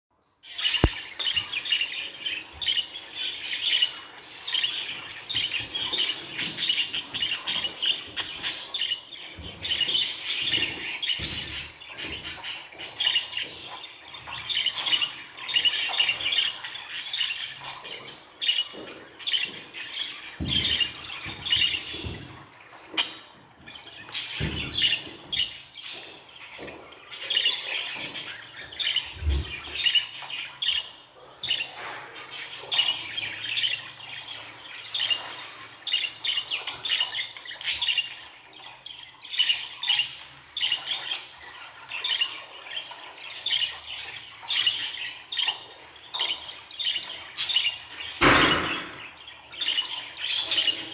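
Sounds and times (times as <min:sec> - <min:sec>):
budgerigars chattering: 0:00.5 - 0:50.9.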